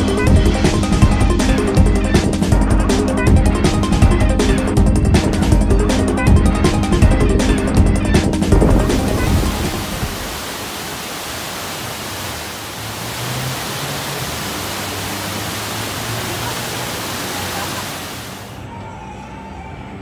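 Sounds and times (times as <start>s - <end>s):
waterfall pouring into a pool: 8.8s - 18.6s.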